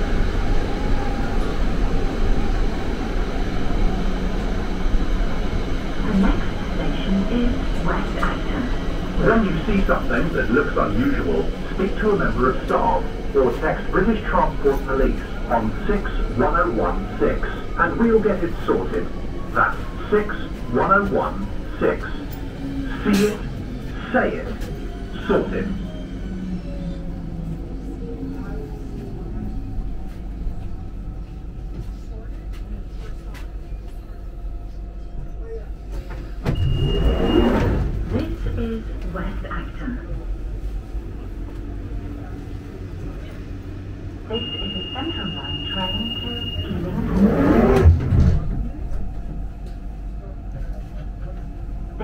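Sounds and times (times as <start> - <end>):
sliding doors: 36.0 - 38.3, 46.8 - 49.1
short high door beep: 36.4 - 37.9
train motor whine: 36.4 - 38.3, 44.3 - 49.8
low rumble: 36.5 - 50.4
high warning tone: 44.3 - 47.3.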